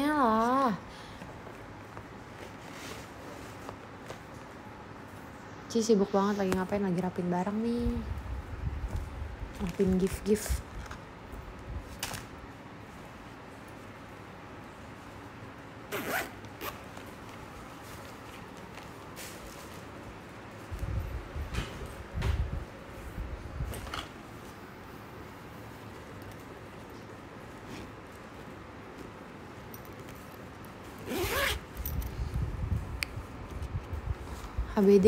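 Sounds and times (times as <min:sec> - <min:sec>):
zipper pulled open: 0:15.9 - 0:17.0, 0:31.0 - 0:32.1.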